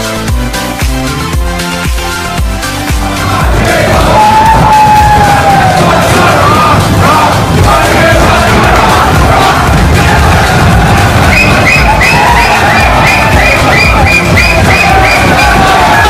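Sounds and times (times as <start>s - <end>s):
young men singing and shouting: 2.9s - 16.0s.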